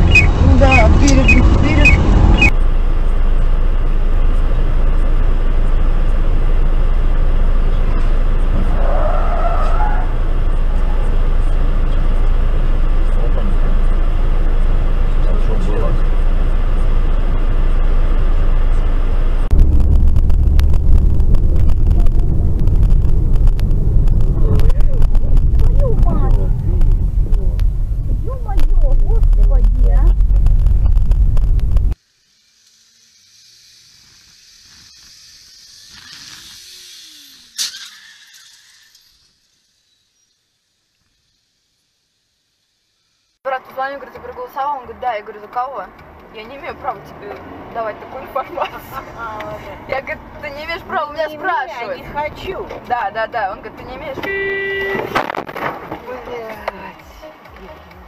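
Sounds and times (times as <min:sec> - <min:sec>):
car engine and road noise: 0:00.0 - 0:58.0.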